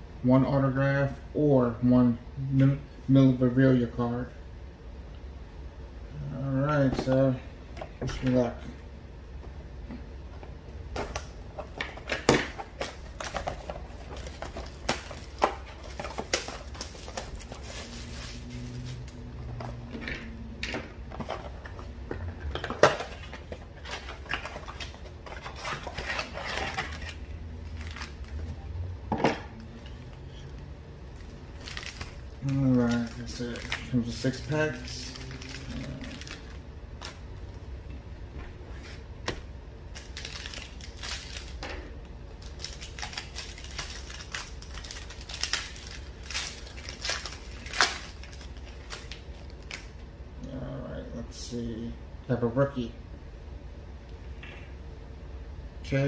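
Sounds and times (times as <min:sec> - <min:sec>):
cardboard box and foil packs rustling: 0:11.0 - 0:19.8, 0:22.6 - 0:28.5, 0:31.3 - 0:37.2, 0:40.0 - 0:41.6, 0:42.4 - 0:49.8.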